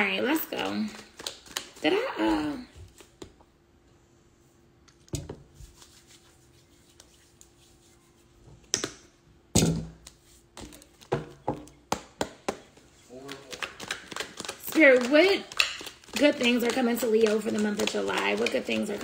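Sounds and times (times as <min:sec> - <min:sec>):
cards shuffled by hand: 0:00.6 - 0:02.0, 0:02.6 - 0:03.3, 0:12.2 - 0:19.0.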